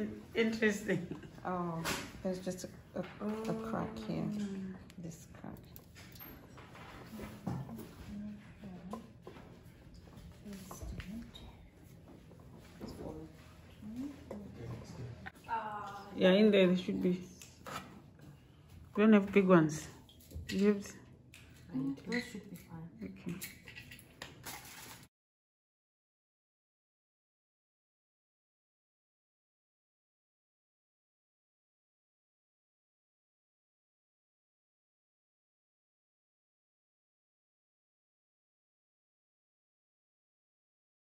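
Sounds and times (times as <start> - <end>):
quiet conversational speech: 0.0 - 23.9
person humming softly: 3.2 - 4.8.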